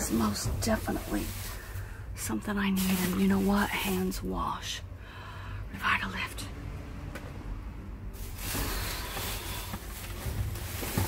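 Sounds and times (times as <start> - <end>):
plastic bags rustling: 0.0 - 4.5, 8.1 - 11.0.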